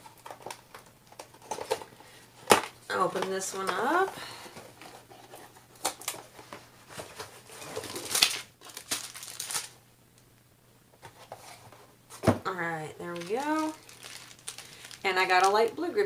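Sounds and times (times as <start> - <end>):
plastic crinkling: 4.2 - 9.8, 13.0 - 16.0.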